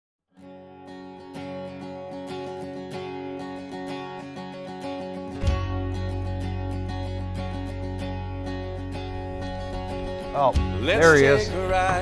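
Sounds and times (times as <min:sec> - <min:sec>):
strummed acoustic guitar chords: 0:00.4 - 0:12.0.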